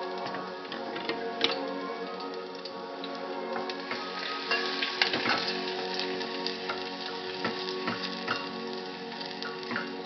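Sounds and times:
garlic sizzling: 0.0s - 10.0s
music with long held notes: 0.0s - 10.0s.

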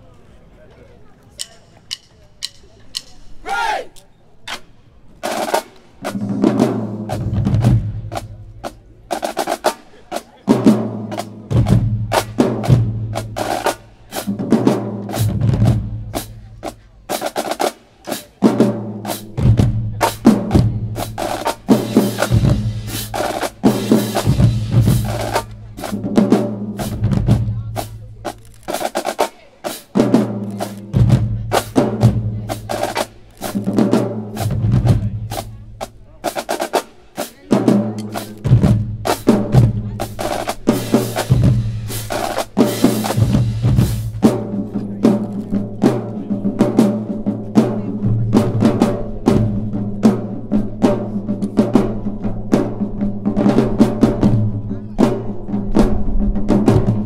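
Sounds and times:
tenor drums: 1.3s - 57.0s
snare drum rolls: 4.5s - 57.0s
bass drums: 6.1s - 9.4s, 10.5s - 17.3s, 18.4s - 29.2s, 29.9s - 36.6s, 37.5s - 57.0s.

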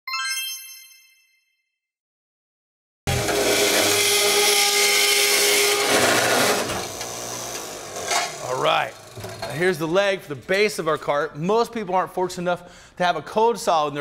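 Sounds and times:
chime ringing: 0.1s - 1.6s
saw cutting steel tubing: 3.1s - 9.6s.

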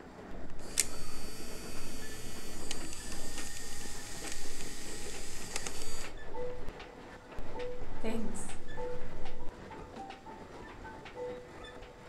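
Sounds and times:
camera clicks: 0.6s - 1.3s, 2.2s - 6.1s
camera motor whirring: 0.6s - 6.2s.

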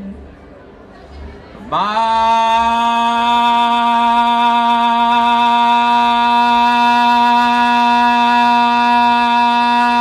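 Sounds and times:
man singing a long note: 1.7s - 10.0s.

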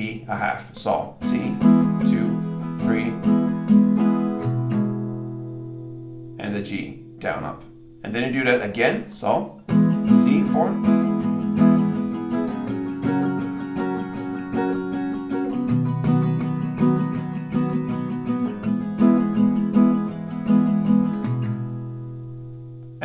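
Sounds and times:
acoustic guitar strumming: 0.0s - 23.0s.

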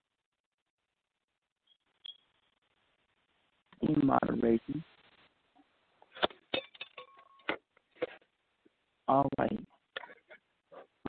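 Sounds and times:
brief beep: 1.6s - 2.3s.

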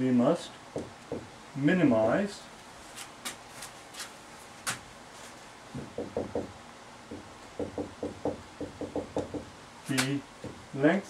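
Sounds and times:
marker knocking on whiteboard: 0.7s - 1.3s, 5.7s - 6.5s, 7.1s - 9.5s.

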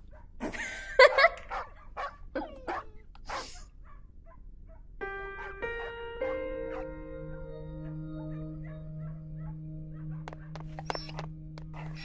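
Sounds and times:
soft music with held notes: 5.0s - 12.0s
puppy yips and whines: 10.8s - 12.0s.

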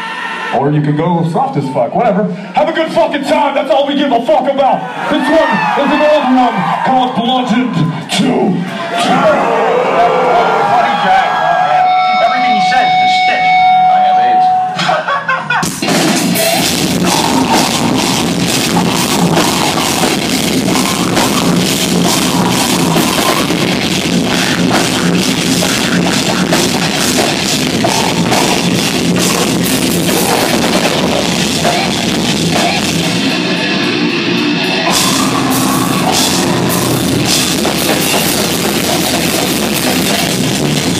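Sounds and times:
crowd noise: 0.0s - 40.9s
distorted guitars: 8.8s - 40.9s
metal band playing live: 8.9s - 40.9s
rapid drum kit: 14.8s - 40.9s
singer's vocals: 15.7s - 40.5s
steady held tone: 16.8s - 32.5s, 33.4s - 38.9s.

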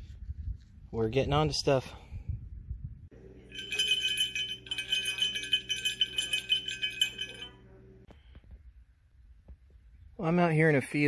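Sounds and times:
bell jingling and rattling: 3.5s - 7.6s.

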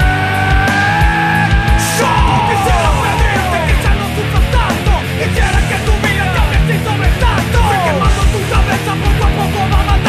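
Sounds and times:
heavy punk metal band: 0.0s - 10.0s
downward sliding tones: 1.8s - 3.9s.

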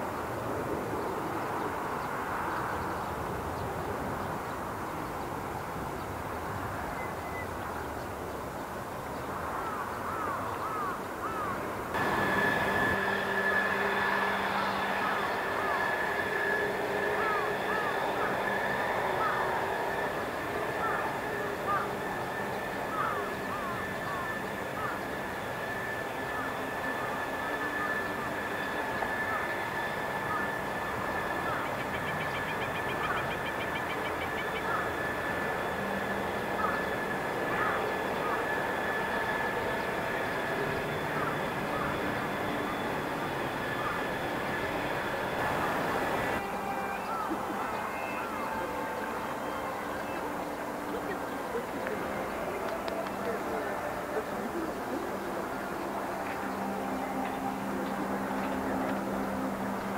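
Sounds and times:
constant rushing: 11.4s - 59.9s
machine whine: 11.9s - 59.9s.

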